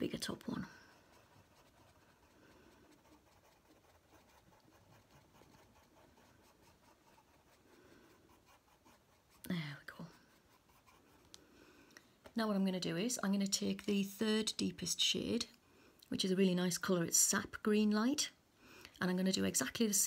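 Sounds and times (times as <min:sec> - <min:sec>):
pencil scratching on paper: 0:00.0 - 0:11.3.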